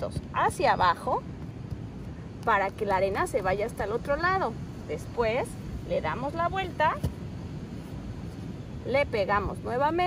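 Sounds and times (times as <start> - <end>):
beach background noise: 0.0 - 10.0.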